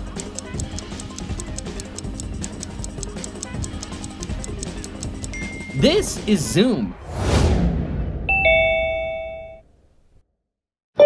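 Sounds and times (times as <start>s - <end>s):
cartoon explosion: 6.9s - 8.5s
two-note ding-dong chime: 8.4s - 9.6s.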